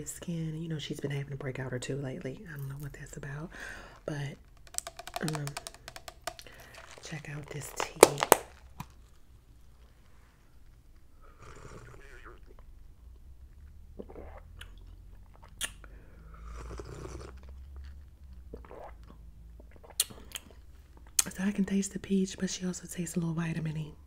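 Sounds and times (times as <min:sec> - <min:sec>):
sipping tea: 0:03.5 - 0:09.0
swallowing: 0:14.0 - 0:15.7.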